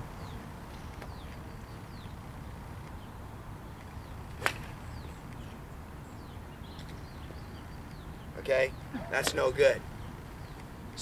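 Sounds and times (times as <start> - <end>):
golf club striking ball: 4.4 - 4.8.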